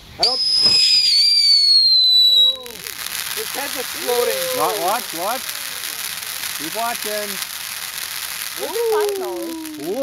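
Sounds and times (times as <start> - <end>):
firework fountain whistling: 0.0 - 10.0.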